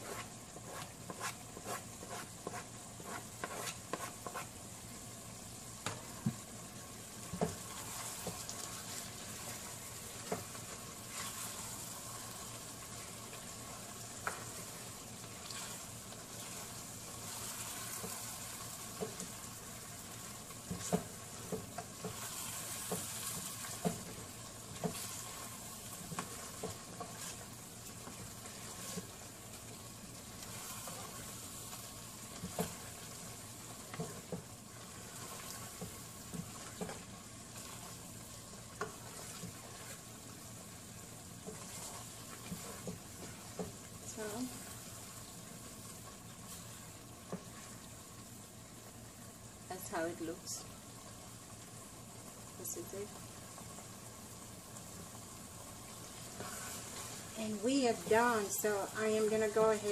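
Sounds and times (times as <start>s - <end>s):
spatula scraping a pan: 0.0s - 4.6s, 7.4s - 12.0s, 12.8s - 19.4s, 20.6s - 29.2s, 38.7s - 40.2s, 41.4s - 44.8s, 56.2s - 57.4s
sauce sizzling: 0.0s - 59.9s.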